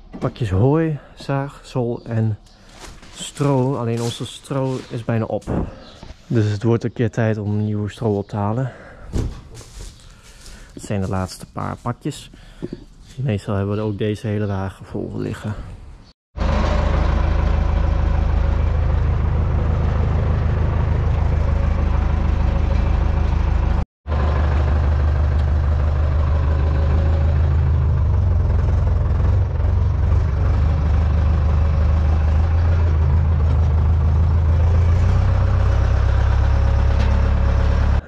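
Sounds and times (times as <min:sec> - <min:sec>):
tractor diesel engine running: 0:16.4 - 0:38.0.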